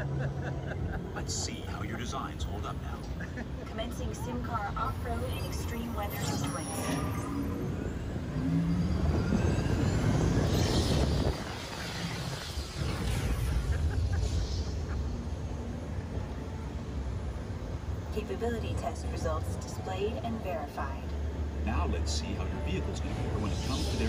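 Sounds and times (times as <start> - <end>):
ride vehicle rumbling on track: 0.0 - 24.0.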